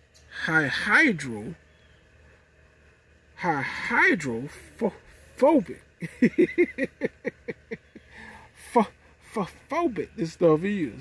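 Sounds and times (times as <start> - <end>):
man laughing: 6.0 - 8.8.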